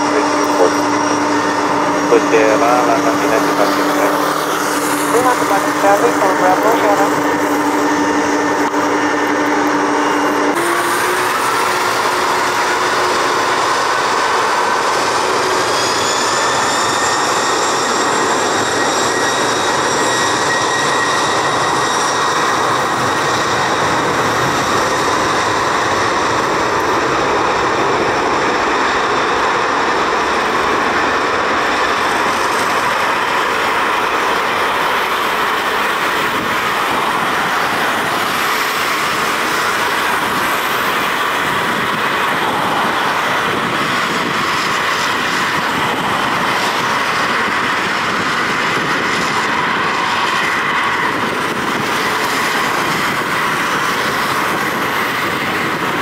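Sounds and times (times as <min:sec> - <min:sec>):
jet engines spooling up: 0:00.0 - 0:56.0.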